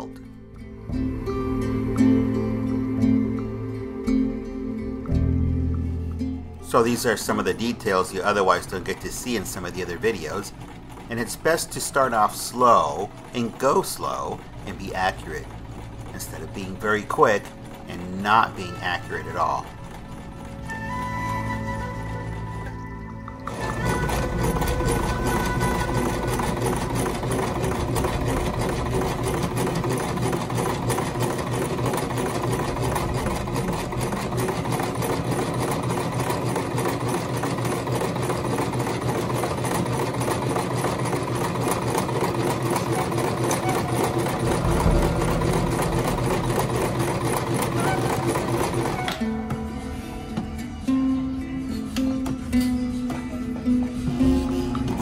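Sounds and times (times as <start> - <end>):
sewing machine stitching: 6.7 - 22.6, 23.5 - 49.5, 53.9 - 55.0.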